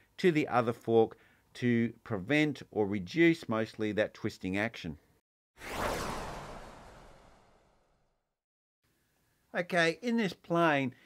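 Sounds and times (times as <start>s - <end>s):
whoosh: 5.6s - 8.2s.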